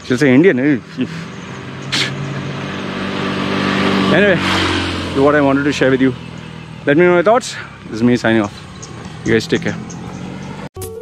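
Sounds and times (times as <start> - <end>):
motor scooter passing by: 0.4 - 10.7.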